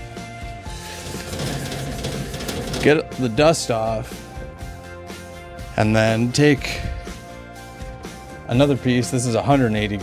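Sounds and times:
paper towel scrubbing metal: 0:00.8 - 0:03.2.

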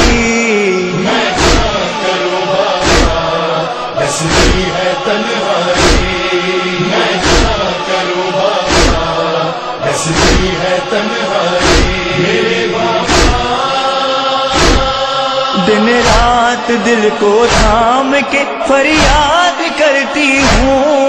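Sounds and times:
male voices chanting: 0:00.0 - 0:21.0
chest-beating thumps: 0:01.3 - 0:01.8, 0:02.8 - 0:03.3, 0:04.2 - 0:04.8, 0:05.7 - 0:07.7, 0:08.7 - 0:09.2, 0:10.1 - 0:10.6, 0:11.6 - 0:13.6, 0:14.5 - 0:15.0, 0:16.0 - 0:16.4, 0:20.4 - 0:20.8.

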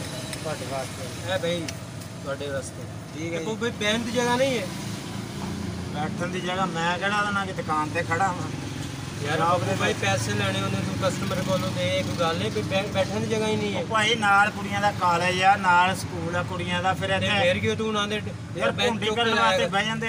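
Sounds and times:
men talking: 0:00.0 - 0:20.0.

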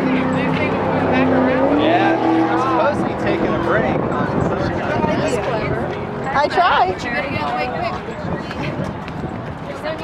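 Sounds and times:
passing vehicle engine drone: 0:00.0 - 0:09.6
crowd chatter: 0:00.0 - 0:10.0.

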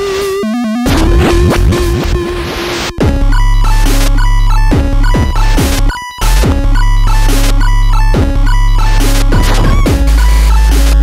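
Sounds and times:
beeping square-wave notes: 0:00.1 - 0:11.0
electronic chip-music dubstep: 0:00.1 - 0:11.0
kick drums with dropping pitch: 0:00.9 - 0:11.0.

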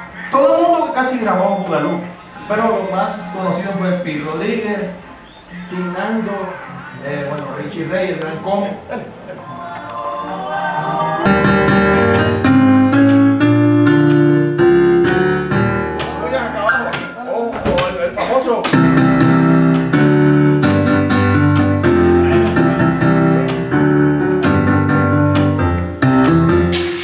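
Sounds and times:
latin boogaloo music: 0:11.2 - 0:17.2, 0:18.8 - 0:27.0.

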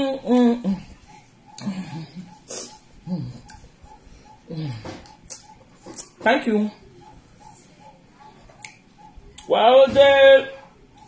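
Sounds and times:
woman humming while chewing: 0:00.0 - 0:05.5.

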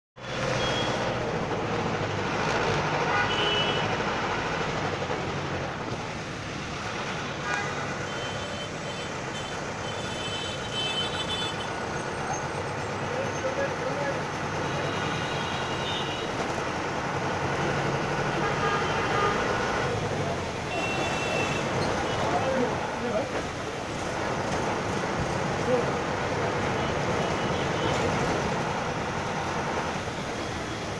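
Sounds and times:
road noise: 0:00.1 - 0:30.9
vehicle horns tooting: 0:00.2 - 0:01.2, 0:03.0 - 0:03.9, 0:07.4 - 0:11.8, 0:18.3 - 0:19.6, 0:20.7 - 0:22.6
diesel engine hum: 0:00.2 - 0:30.9.

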